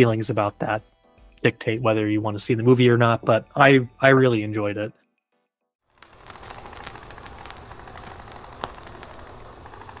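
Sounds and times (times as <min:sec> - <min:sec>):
small clicks: 0:06.0 - 0:10.0
steady crackling hiss: 0:06.0 - 0:10.0.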